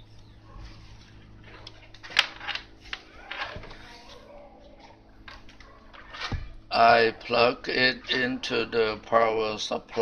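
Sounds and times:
steady low hum: 0.0 - 10.0
rustling noises: 0.5 - 6.6.

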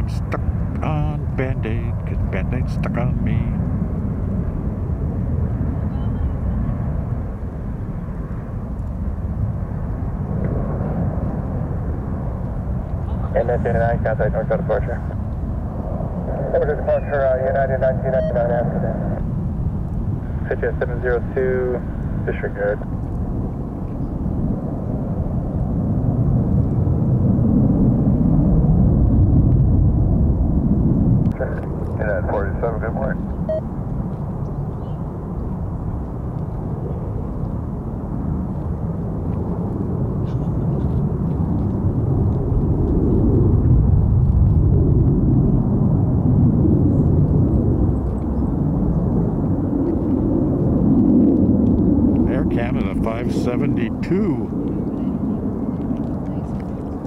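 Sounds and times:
jet airliner engine rumble: 0.0 - 57.0.

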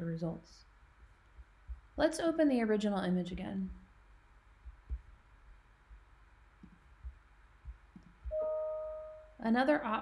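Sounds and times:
soft low thumps: 0.8 - 2.4, 3.2 - 8.6.

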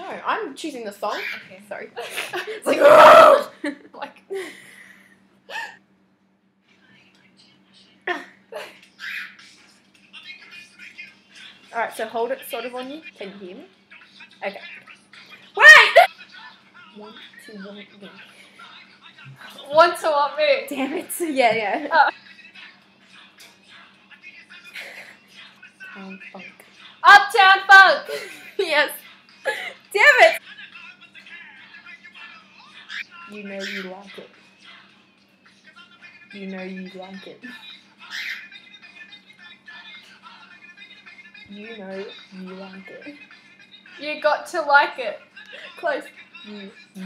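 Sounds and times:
faint steady hum: 0.0 - 47.0
faint music from earbuds: 6.4 - 47.0.

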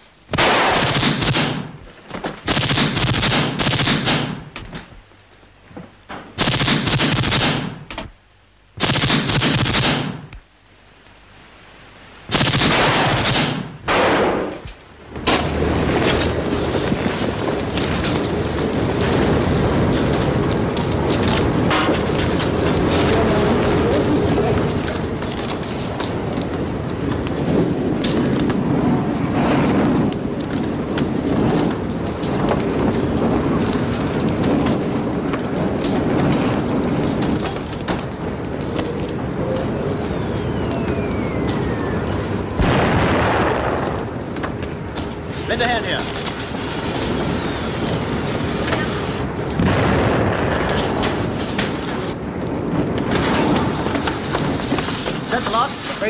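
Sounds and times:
crackling gunfire and commotion: 0.0 - 56.0
automatic gunfire bursts: 0.3 - 1.7, 2.5 - 4.5, 6.4 - 7.8, 8.8 - 10.3, 12.3 - 14.4.

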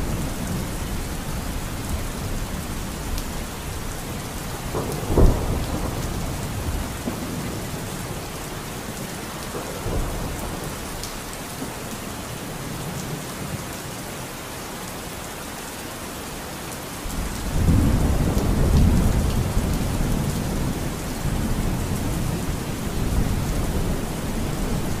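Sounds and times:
steady rain: 0.0 - 25.0
thunder rumbling: 4.5 - 8.2, 17.2 - 25.0.

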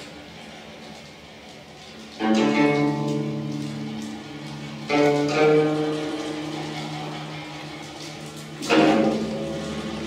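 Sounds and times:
zither strings ringing: 2.1 - 10.0.

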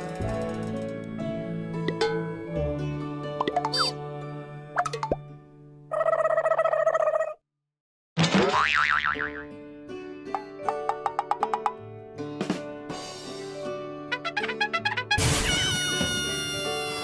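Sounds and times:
playful background music: 0.0 - 7.0, 8.2 - 17.0.

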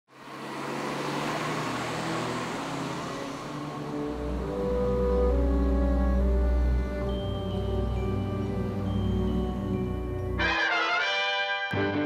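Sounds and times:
road traffic noise: 0.1 - 11.0.

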